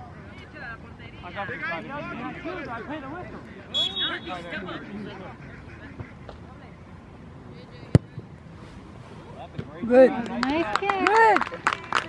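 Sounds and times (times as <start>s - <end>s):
spectators' voices: 0.0s - 12.0s
referee's whistle: 3.7s - 4.5s.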